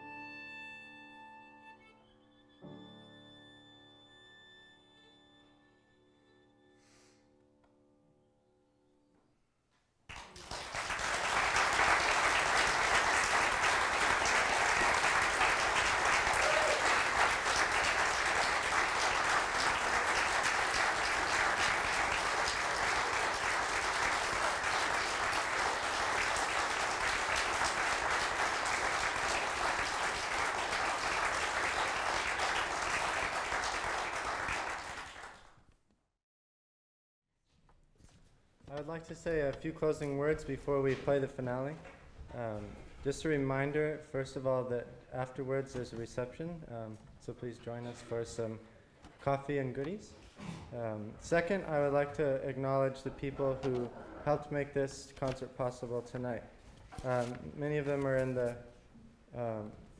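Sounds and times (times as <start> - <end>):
violin with piano: 0.0 - 6.7
audience applauding: 10.1 - 35.6.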